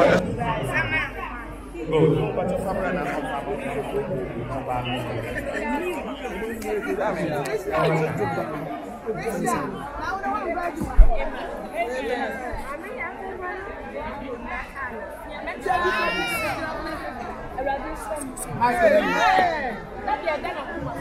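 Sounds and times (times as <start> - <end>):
crowd chatter: 0.0 - 21.0.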